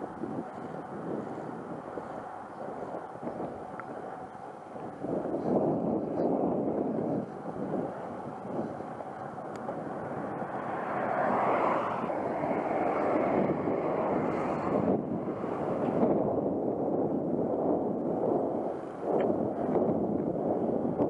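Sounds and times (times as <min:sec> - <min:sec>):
bike tyres rolling on asphalt: 0:00.0 - 0:21.0
wind on camera microphone: 0:00.0 - 0:21.0.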